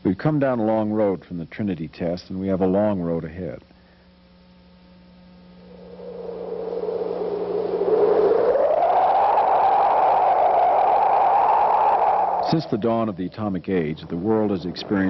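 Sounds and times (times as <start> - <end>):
faint steady hum: 0.0 - 15.0
rushing whooshing noise: 5.6 - 12.8.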